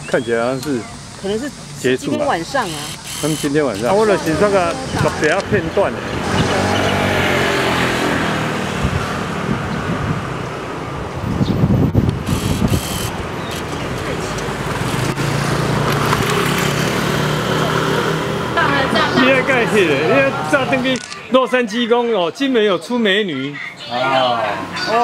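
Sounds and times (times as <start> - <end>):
vehicle engine running: 0.0 - 10.2, 11.9 - 20.6.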